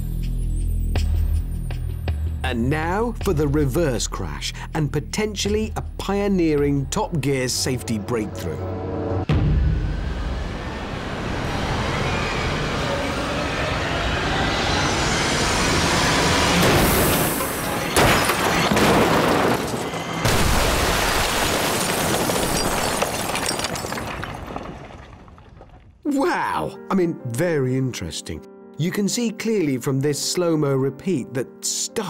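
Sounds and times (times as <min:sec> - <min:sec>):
bricks and debris clattering: 0:17.7 - 0:26.0
heavy crash into brick walls: 0:17.8 - 0:26.0.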